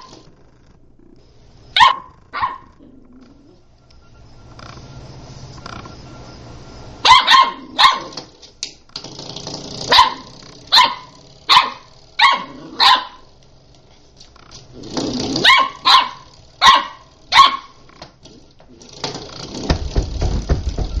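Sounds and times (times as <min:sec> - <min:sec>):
puppy yapping: 0:01.8 - 0:02.9, 0:07.0 - 0:08.2, 0:09.9 - 0:13.3, 0:15.3 - 0:17.8
rumbling rustling noise: 0:18.3 - 0:21.0.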